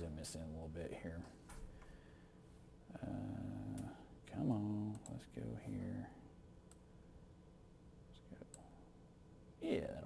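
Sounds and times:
man saying uhh: 2.9 - 4.0.

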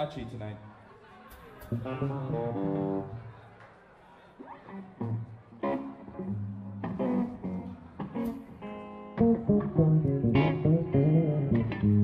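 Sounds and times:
electric guitar chords: 4.7 - 12.0
low bass notes: 9.2 - 12.0.

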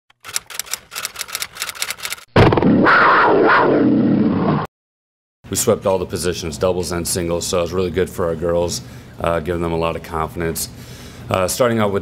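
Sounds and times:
rapid sharp ticks: 0.1 - 2.3.

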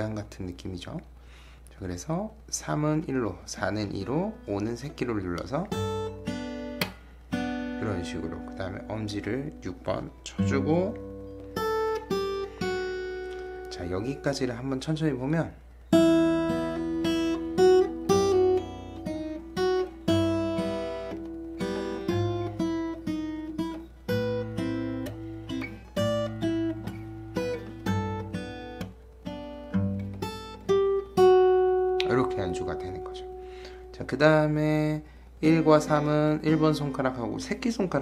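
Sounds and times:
acoustic guitar fingerstyle: 2.3 - 38.0.

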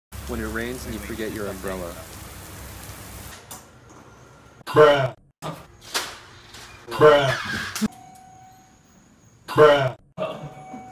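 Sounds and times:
heavy rain pouring: 0.1 - 3.5.

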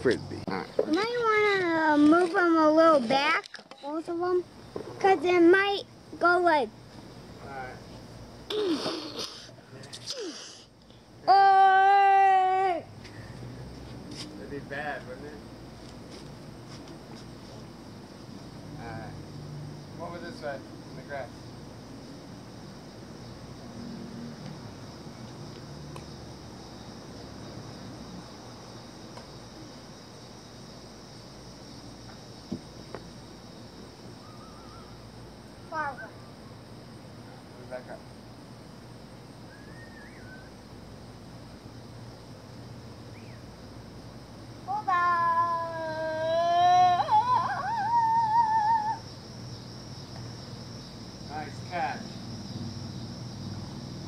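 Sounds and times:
steady background hum: 0.0 - 54.0
child's high-pitched squeal: 11.3 - 12.9, 44.7 - 49.1.

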